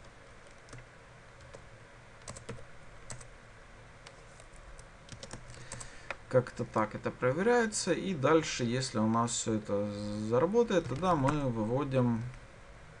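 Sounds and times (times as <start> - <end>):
faint keyboard typing: 0.0 - 3.3, 4.0 - 6.2, 10.7 - 11.4.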